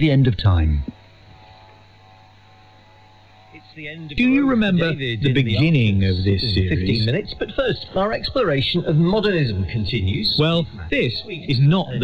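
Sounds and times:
faint whine tones: 0.0 - 12.0
low electrical hum: 0.0 - 12.0.

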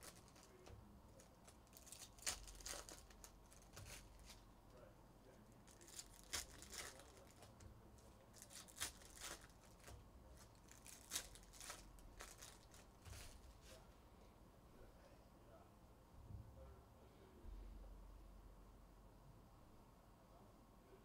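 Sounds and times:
foil wrappers tearing and crinkling: 0.0 - 4.4, 5.6 - 7.6, 8.3 - 13.6.

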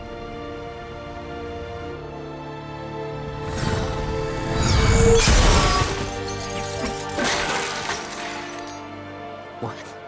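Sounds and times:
dramatic film score: 0.0 - 10.0
glass collapsing and debris falling: 5.1 - 8.9.

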